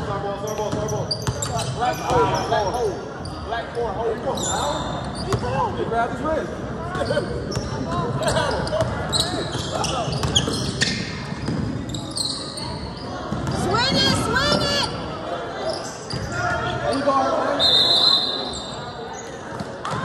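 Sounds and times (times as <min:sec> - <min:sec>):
sneakers squeaking: 0:00.1 - 0:05.8, 0:06.9 - 0:20.0.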